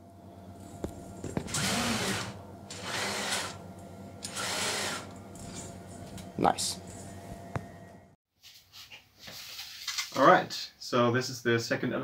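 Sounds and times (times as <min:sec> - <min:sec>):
belt and bearings whirring: 0:01.2 - 0:03.6, 0:04.2 - 0:06.0.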